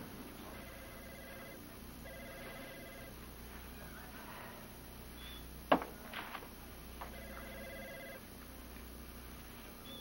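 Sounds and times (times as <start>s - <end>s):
telephone ringing faintly: 0.4s - 3.2s, 7.0s - 8.3s.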